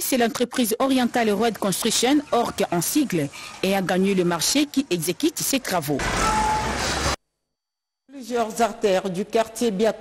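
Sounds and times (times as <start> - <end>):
short beep: 6.2 - 6.8.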